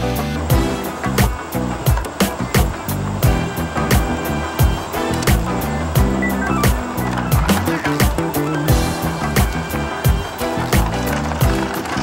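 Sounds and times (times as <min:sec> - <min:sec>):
background music with fast drum beat: 0:00.0 - 0:12.0.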